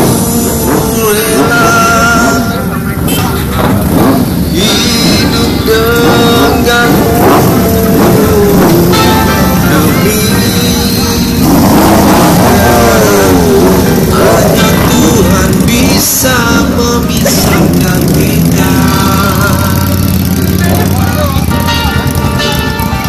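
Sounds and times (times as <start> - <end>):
loud music with singer: 0.0 - 23.0
motorcycle engines rumbling: 0.0 - 23.0.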